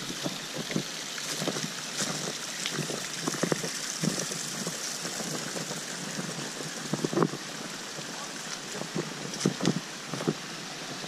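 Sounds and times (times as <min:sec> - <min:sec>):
stream trickling over rocks: 0:00.0 - 0:11.0.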